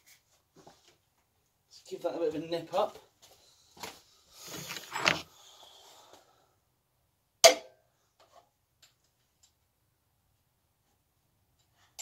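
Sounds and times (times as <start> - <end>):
rustling and scraping of tools: 2.9 - 6.3.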